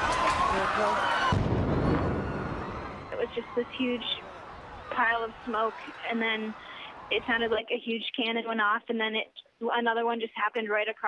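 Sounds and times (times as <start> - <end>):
explosion deep boom: 1.2 - 3.2.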